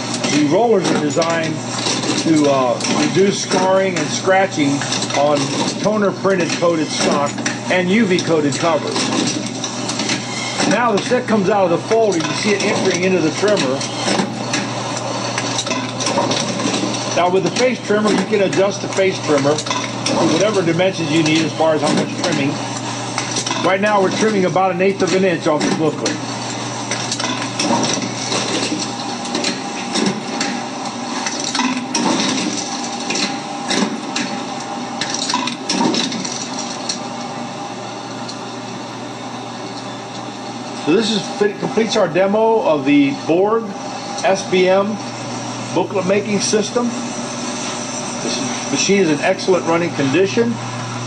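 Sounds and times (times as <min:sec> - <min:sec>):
mechanical clatter: 0:00.0 - 0:37.2
machine motor hum: 0:00.0 - 0:51.0.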